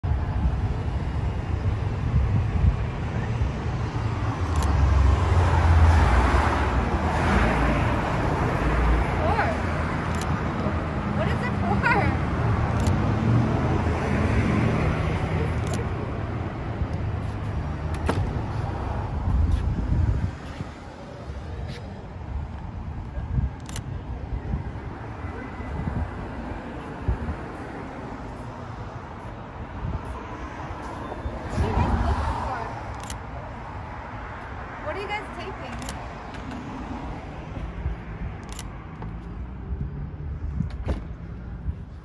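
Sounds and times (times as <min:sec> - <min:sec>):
passing cars rumble: 0:00.0 - 0:42.0
sharp clicks: 0:12.8 - 0:13.0.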